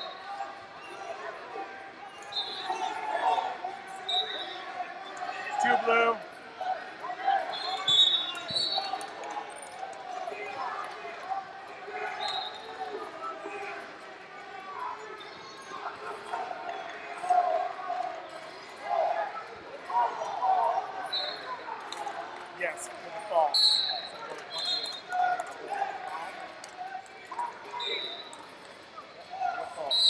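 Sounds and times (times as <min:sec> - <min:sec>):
voices echoing in a hall: 0:00.0 - 0:30.0.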